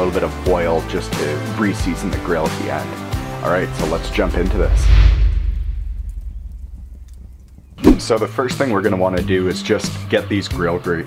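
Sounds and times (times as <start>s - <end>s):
deep boom with rumble: 3.8s - 8.0s.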